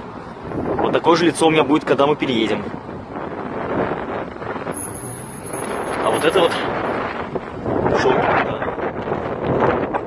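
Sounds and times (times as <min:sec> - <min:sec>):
wind on microphone: 0:00.0 - 0:01.4, 0:02.5 - 0:10.0
street traffic rushing: 0:00.0 - 0:10.0.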